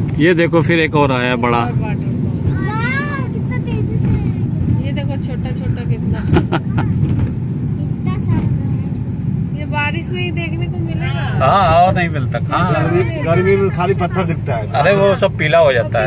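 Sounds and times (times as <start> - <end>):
car engine and road rumble: 0.0 - 16.0
faint voices in car: 0.0 - 16.0.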